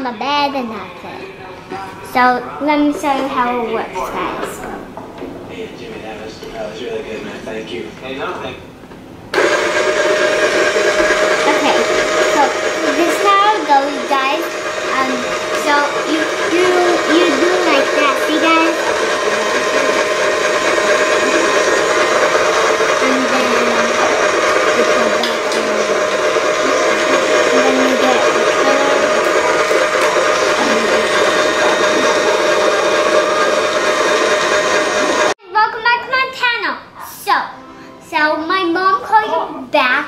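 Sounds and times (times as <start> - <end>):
small electric motor whirring: 9.4 - 35.3.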